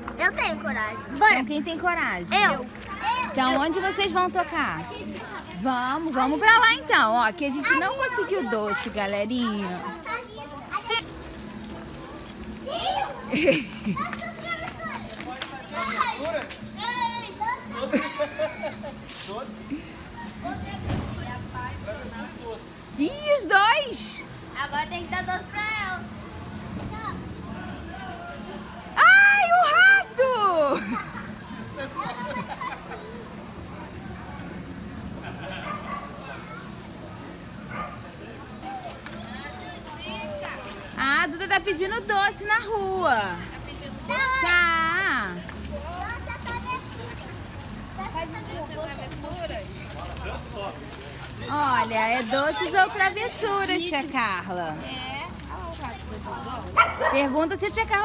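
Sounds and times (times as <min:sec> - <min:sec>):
children's voices: 0:00.0 - 0:03.9, 0:07.4 - 0:11.4, 0:12.6 - 0:18.8, 0:35.5 - 0:37.3, 0:38.6 - 0:40.9, 0:43.5 - 0:44.5, 0:45.7 - 0:49.2
children's voices chattering: 0:00.0 - 0:58.0
child's high-pitched speech: 0:45.9 - 0:47.3.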